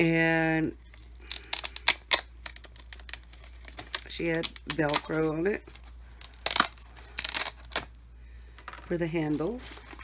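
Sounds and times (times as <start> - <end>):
velcro pulled apart crackling: 1.2 - 5.2, 6.2 - 7.9.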